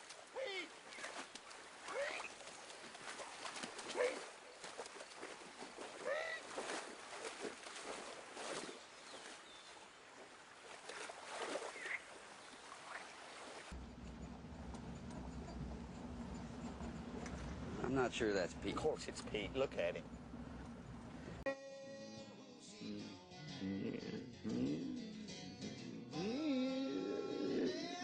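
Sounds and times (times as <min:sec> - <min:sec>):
splashing in shallow water: 0:00.0 - 0:13.8
car engine hum inside cab: 0:13.8 - 0:18.6.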